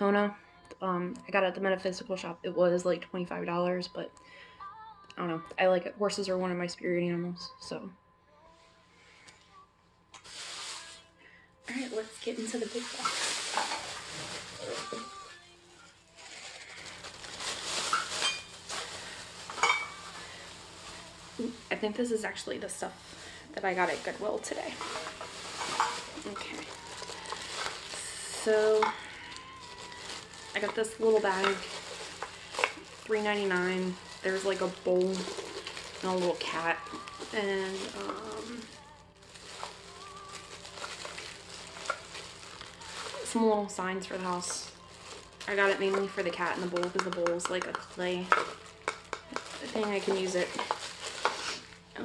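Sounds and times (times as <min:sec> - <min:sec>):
rustling: 0:10.2 - 0:11.1, 0:11.7 - 0:46.8
plastic wrapping crinkling: 0:10.2 - 0:52.0
hard objects clinking together: 0:17.8 - 0:20.5, 0:24.7 - 0:38.3, 0:44.3 - 0:51.6.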